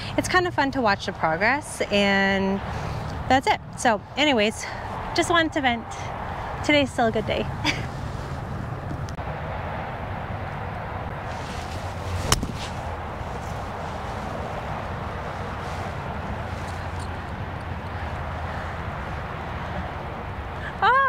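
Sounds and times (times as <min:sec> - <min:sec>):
outdoor background noise: 0:00.0 - 0:21.0
golf club striking ball: 0:12.2 - 0:12.8.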